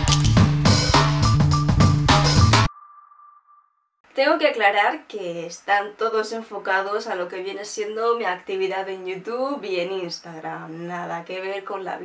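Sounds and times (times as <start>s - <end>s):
jingle music with a beat: 0.0s - 2.8s.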